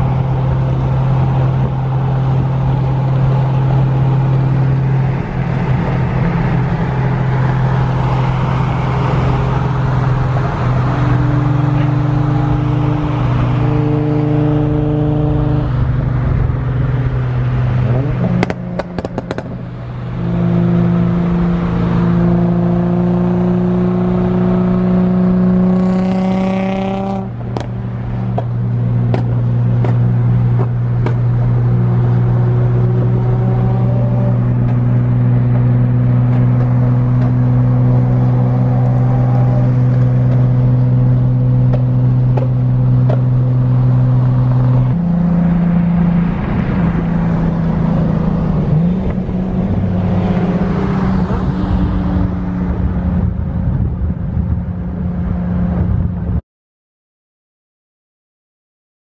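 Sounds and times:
car engine accelerating: 0.0 - 56.4.

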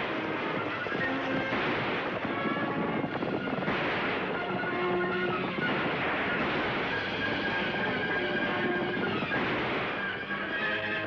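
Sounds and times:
orchestral chase music: 0.0 - 11.0.

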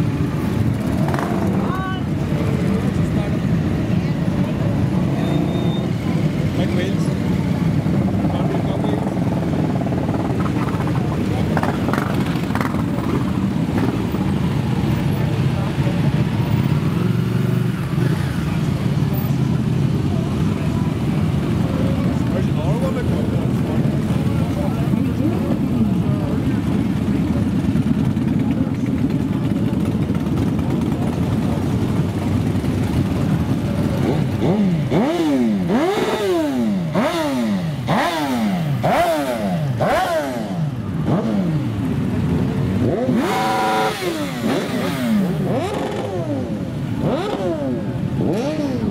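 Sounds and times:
motorcycle engines rumbling: 0.0 - 48.9
motorcycles revving: 0.0 - 48.9.

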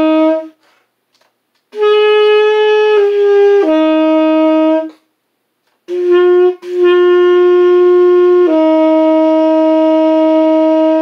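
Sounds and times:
tenor saxophone long note: 0.0 - 0.6, 1.7 - 5.0, 5.9 - 11.0.

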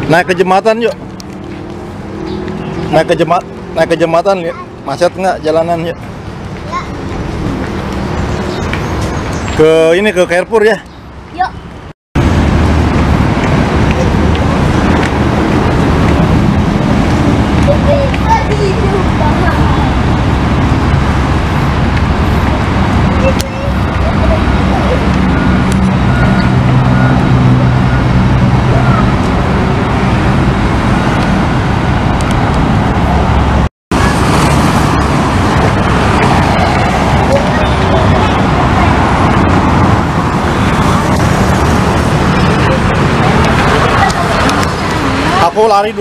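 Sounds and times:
vehicle engine low hum: 0.0 - 10.0, 11.0 - 45.6
city street traffic: 0.0 - 46.0.

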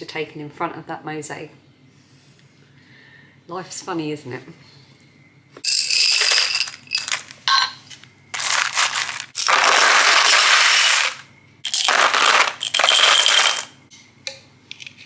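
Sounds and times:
glass tiles clattering into tub: 5.6 - 7.8, 8.4 - 13.8.

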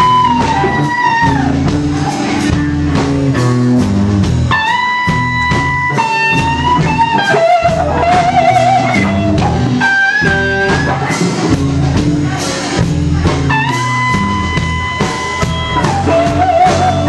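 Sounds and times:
electric guitar solo: 0.0 - 11.6, 13.4 - 17.0
drum kit: 0.0 - 17.0
electric bass: 0.0 - 17.0.

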